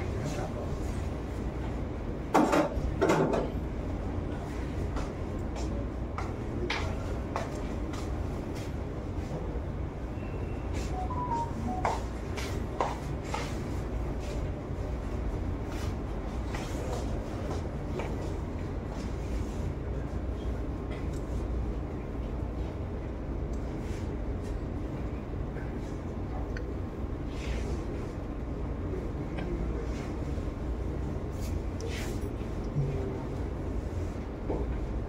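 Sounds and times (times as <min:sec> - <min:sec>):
low room rumble: 0:00.0 - 0:35.0.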